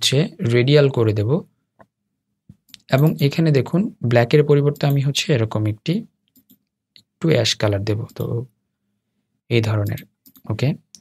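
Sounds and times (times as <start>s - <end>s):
person talking: 2.6s - 6.1s, 7.1s - 8.6s, 9.5s - 11.0s
computer mouse clicks: 6.3s - 7.1s, 9.8s - 11.0s.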